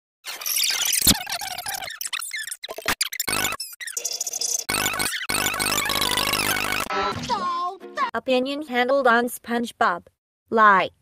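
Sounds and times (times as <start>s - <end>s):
distorted cartoon sound effects: 0.3s - 7.6s.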